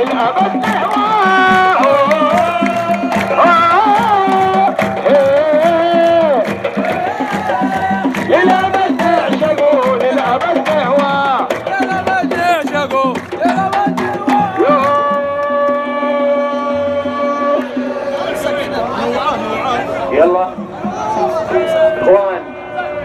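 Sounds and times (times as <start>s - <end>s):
frame drums beating: 0.0s - 22.0s
loud sliding melody: 11.7s - 23.0s.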